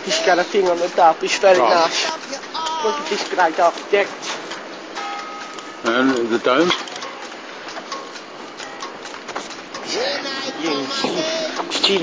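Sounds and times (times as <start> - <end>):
city street background noise: 0.0 - 12.0.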